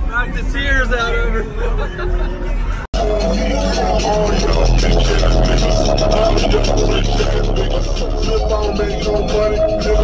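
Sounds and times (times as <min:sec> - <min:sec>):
loud music with heavy sub-bass: 0:01.0 - 0:10.0.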